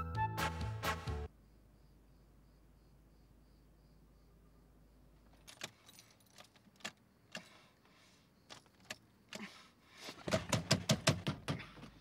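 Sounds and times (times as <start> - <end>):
car keys jangling: 5.3 - 7.0.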